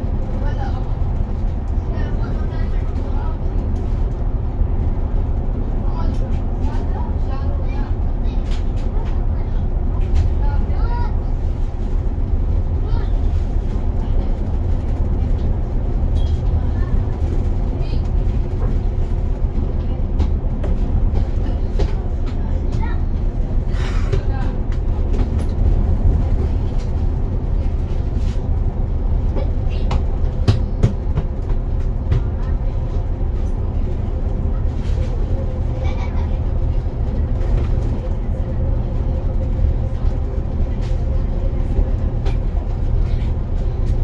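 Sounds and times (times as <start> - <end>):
bus engine and road rumble: 0.0 - 44.0.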